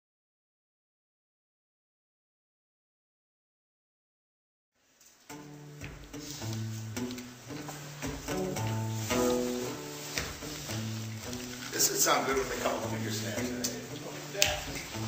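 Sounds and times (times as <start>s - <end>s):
plucked guitars playing: 5.3s - 15.0s.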